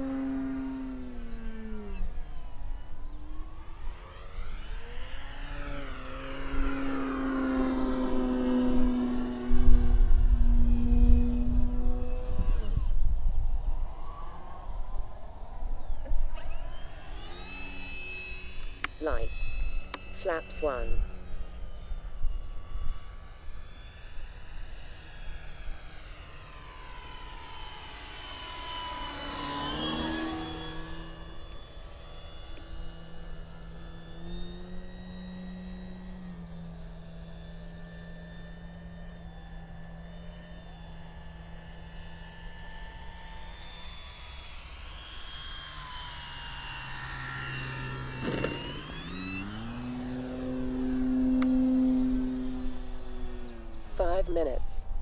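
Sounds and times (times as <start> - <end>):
electric model plane motor whine: 0.0 - 55.0.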